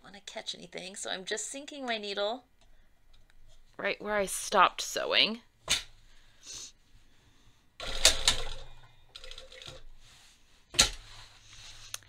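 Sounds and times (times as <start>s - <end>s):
sewing machine stitching: 7.8s - 8.7s.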